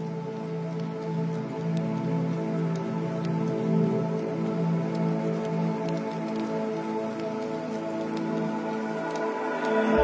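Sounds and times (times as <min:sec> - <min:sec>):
crackling rain texture: 0:00.0 - 0:10.0.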